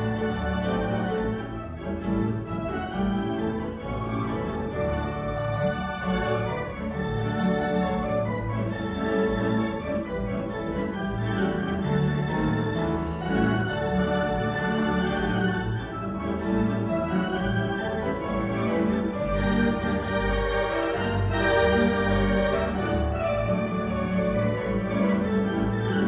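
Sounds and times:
theatre organ playing: 0.0 - 26.0.

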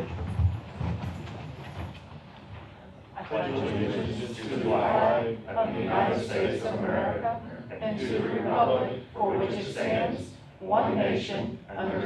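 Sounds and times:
office chairs rumbling and knocking: 0.0 - 2.8.

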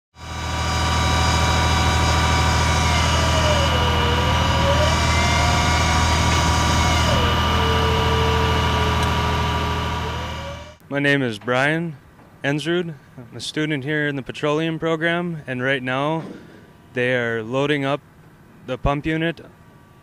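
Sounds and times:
diesel engine running: 0.1 - 10.8
whine varying in pitch: 0.2 - 10.8.

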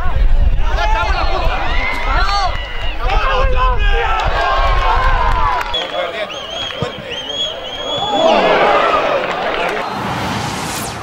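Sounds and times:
voices shouting and calling out: 0.5 - 9.9.

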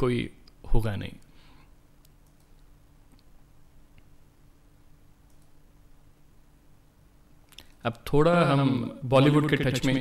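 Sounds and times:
faint steady hum: 0.0 - 10.0
faint sharp clicks: 5.3 - 5.5.

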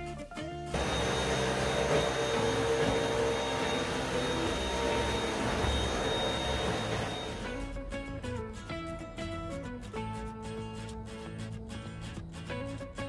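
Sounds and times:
music: 0.0 - 13.0
handheld vacuum cleaner running: 0.7 - 7.6.

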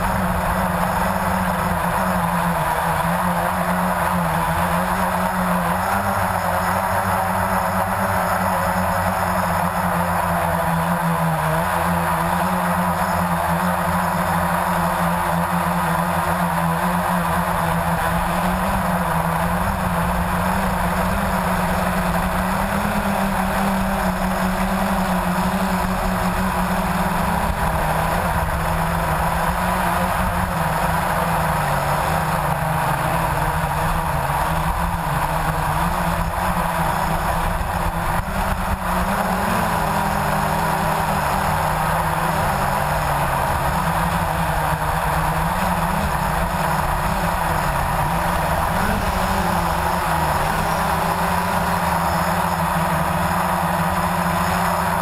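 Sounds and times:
quadcopter motors humming: 0.0 - 55.0.

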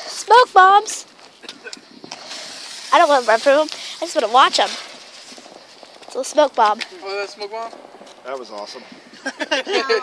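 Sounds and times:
smoke bomb hissing: 2.1 - 4.2.

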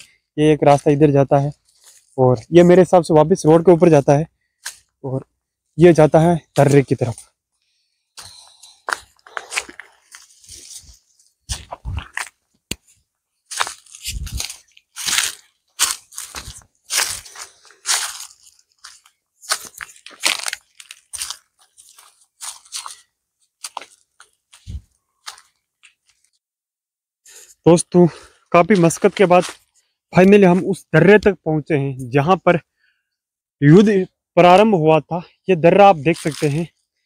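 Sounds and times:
footsteps crunching through dry leaves: 0.7 - 2.2, 8.2 - 26.3, 28.7 - 29.8, 36.1 - 36.7.

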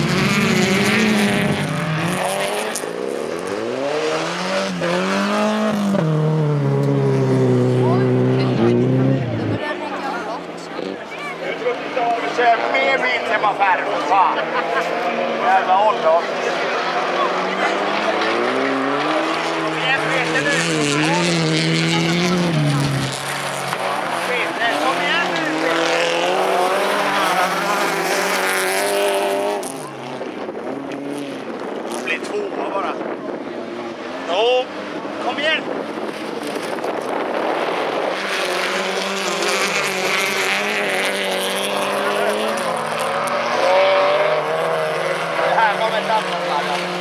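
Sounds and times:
race car engines revving: 0.0 - 47.0.

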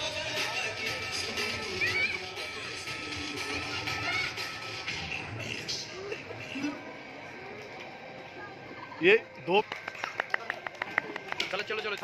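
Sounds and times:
outdoor crowd murmur: 0.0 - 12.0.

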